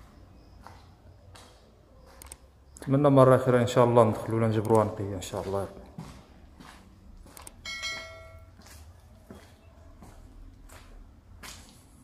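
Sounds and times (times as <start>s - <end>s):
bright electronic bell chime: 7.6s - 8.6s.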